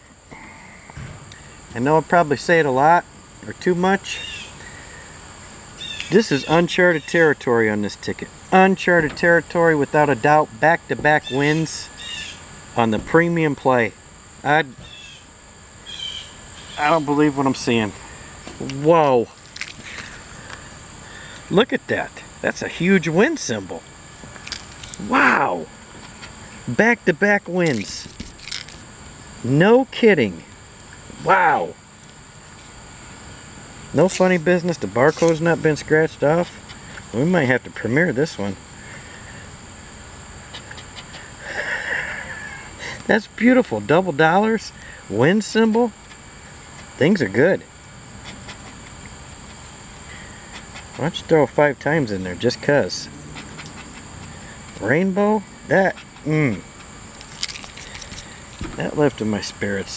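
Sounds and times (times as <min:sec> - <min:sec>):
high-pitched insect drone: 0:00.0 - 0:59.9
scraper scratching lottery ticket: 0:48.2 - 0:49.0, 0:57.2 - 0:58.3.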